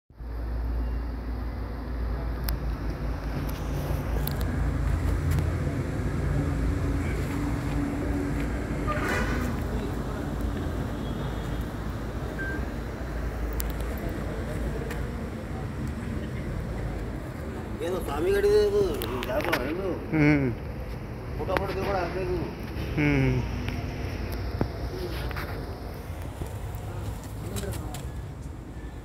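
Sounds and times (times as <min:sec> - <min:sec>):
traffic rumble: 0:00.2 - 0:29.0
indistinct voices: 0:21.4 - 0:25.6.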